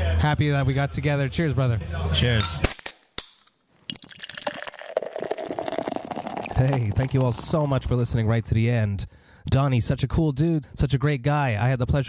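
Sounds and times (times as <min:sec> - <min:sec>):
crackle of bubbles: 0:03.6 - 0:08.4
beer pouring into a glass: 0:03.7 - 0:08.4.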